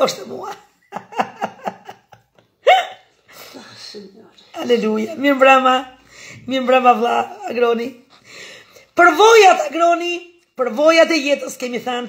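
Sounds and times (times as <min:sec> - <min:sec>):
woman laughing: 0:00.5 - 0:03.3
faint breathing: 0:06.0 - 0:06.5, 0:08.0 - 0:09.0.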